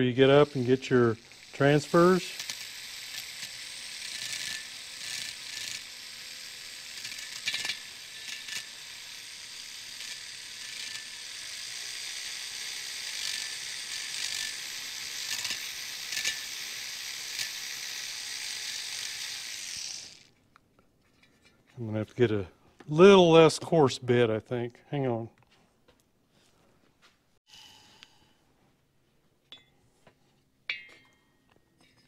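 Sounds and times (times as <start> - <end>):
rotary tool high whine: 0.0 - 20.4.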